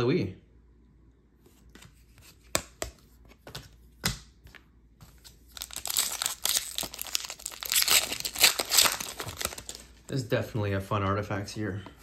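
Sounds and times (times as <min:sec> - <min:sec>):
foil wrapper tearing and crinkling: 0:05.5 - 0:10.0.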